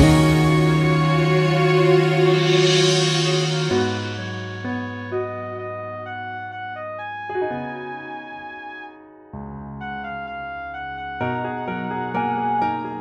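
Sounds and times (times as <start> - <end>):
ballad with keyboard chords: 0.0 - 13.0.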